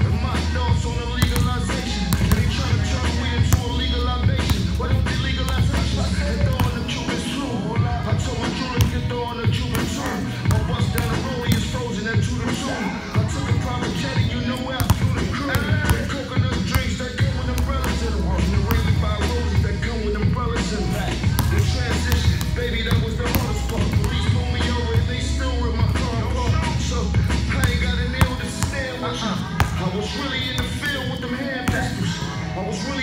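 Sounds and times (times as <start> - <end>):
music: 0.0 - 33.0
rapping over heavy beat: 0.0 - 33.0
basketball bouncing on court: 0.2 - 7.2, 7.8 - 12.5, 13.2 - 19.7, 21.3 - 25.1, 27.5 - 32.0
basketball bouncing on hard floor: 1.2 - 2.6, 3.5 - 6.8, 8.8 - 11.7, 14.8 - 16.1, 21.4 - 24.3.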